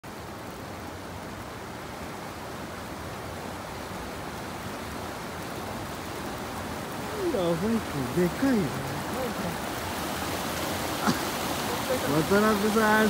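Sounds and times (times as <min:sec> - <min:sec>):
fast-flowing stream rushing: 0:00.0 - 0:13.0.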